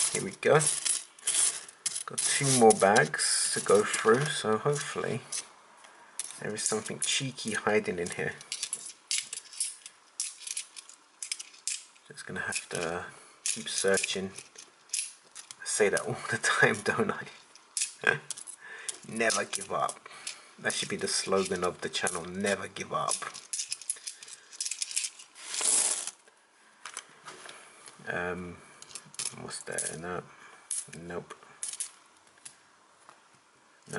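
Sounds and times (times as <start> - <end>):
coins clinking: 0.0 - 5.5, 6.2 - 16.0, 17.5 - 20.4, 21.1 - 26.2, 30.7 - 31.0, 31.6 - 32.0.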